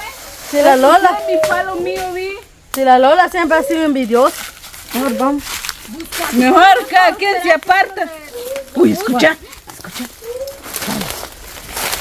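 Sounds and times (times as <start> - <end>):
dry leaves rustling: 0.0 - 12.0.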